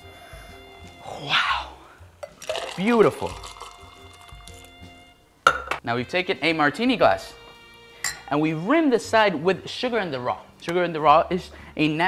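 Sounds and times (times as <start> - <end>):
liquid pouring into a glass: 2.2 - 4.7.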